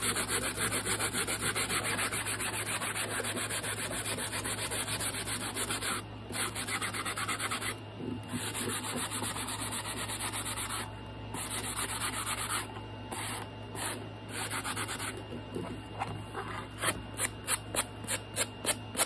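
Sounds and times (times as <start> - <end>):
sanding block rubbing board: 0.0 - 10.8.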